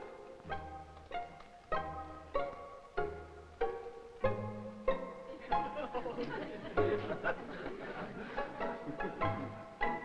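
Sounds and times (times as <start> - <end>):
orchestra playing light strings: 0.0 - 10.0.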